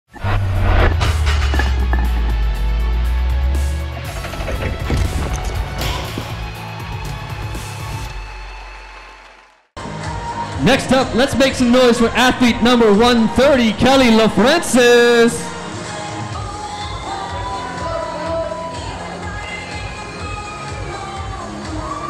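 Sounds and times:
deep bass hit: 0:00.1 - 0:06.7
intro sting music: 0:00.1 - 0:08.2
shattering impact effects: 0:00.2 - 0:06.4.

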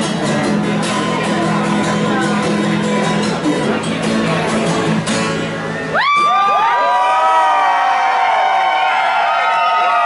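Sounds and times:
men whooping and hollering: 0:06.0 - 0:10.0.

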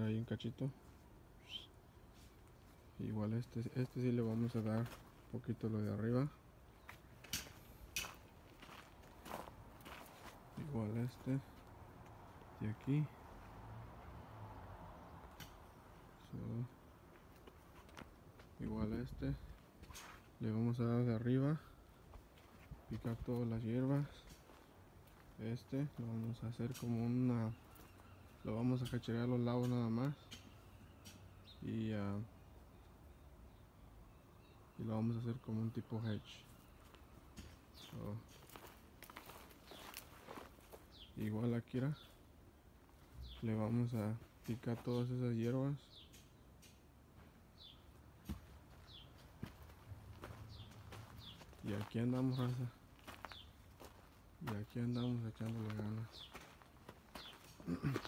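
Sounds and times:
faint footsteps on gravel: 0:04.1 - 0:05.6, 0:06.8 - 0:14.2, 0:17.0 - 0:20.4, 0:22.0 - 0:29.1, 0:36.4 - 0:42.2, 0:42.8 - 0:45.2, 0:48.2 - 0:58.0.

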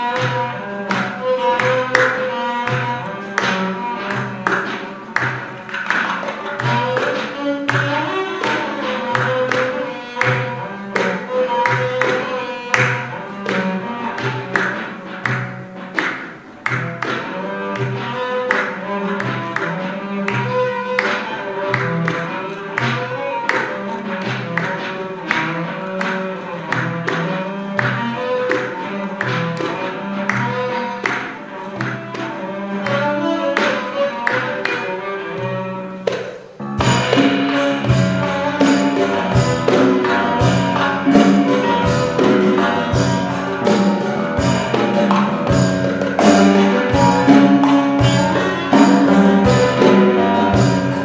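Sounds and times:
hand drum strikes: 0:00.0 - 0:34.8, 0:36.0 - 0:51.0
cello and piano tones: 0:00.0 - 0:51.0.

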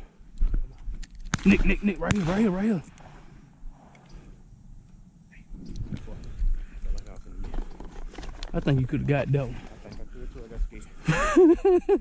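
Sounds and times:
wind buffeting microphone: 0:05.5 - 0:07.4.

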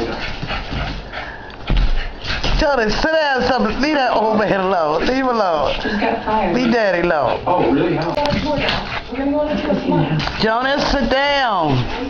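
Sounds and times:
small dog playing noises: 0:00.0 - 0:12.0.

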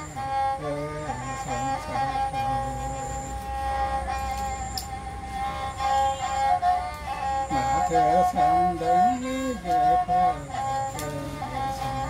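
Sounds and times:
bowed fiddle holding long note: 0:00.0 - 0:12.0.

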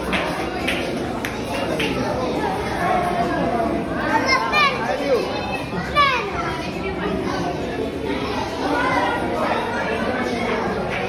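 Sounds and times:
children shouting and chattering: 0:00.0 - 0:11.0.

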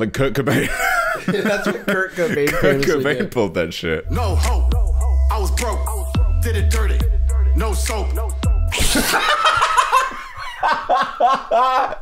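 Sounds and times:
men laughing hard: 0:00.5 - 0:03.2, 0:08.7 - 0:12.0.

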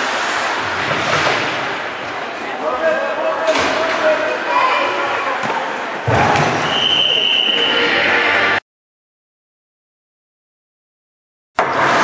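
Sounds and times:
echoing arena noise: 0:00.0 - 0:08.6, 0:11.6 - 0:12.0.

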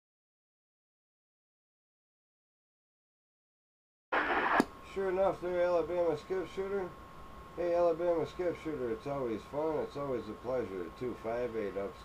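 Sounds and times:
radio click: 0:04.2 - 0:04.7
radio static burst: 0:04.2 - 0:04.7
low radio hiss: 0:04.2 - 0:12.0.

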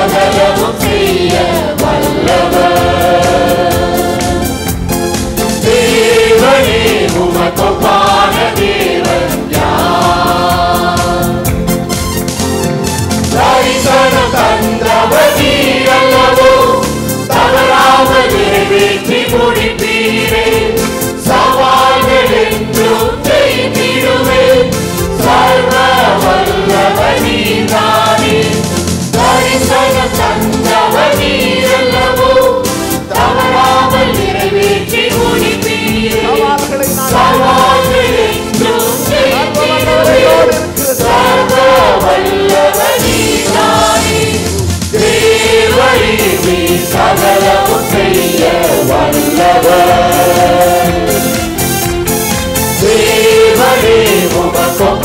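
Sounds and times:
congregation singing: 0:00.0 - 0:11.9, 0:13.2 - 0:55.0
musical accompaniment with beat: 0:00.0 - 0:55.0.

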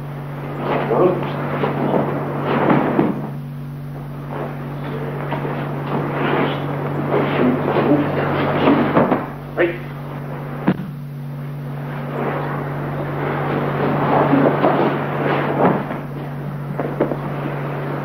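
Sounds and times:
film soundtrack hum and hiss: 0:00.0 - 0:18.0.

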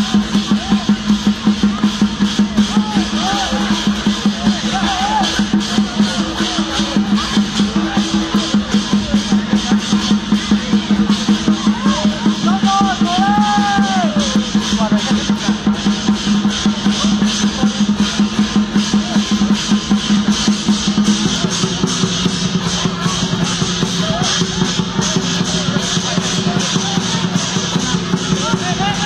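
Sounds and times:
drum and cymbals beating: 0:00.0 - 0:29.0.

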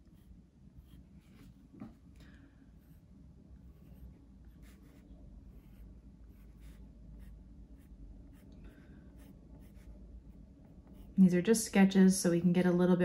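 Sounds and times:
pencil scratching on paper: 0:00.0 - 0:01.9, 0:02.8 - 0:11.2.

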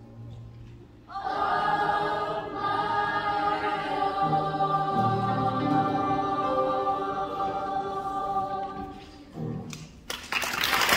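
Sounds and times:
youth choir singing: 0:01.1 - 0:09.6.

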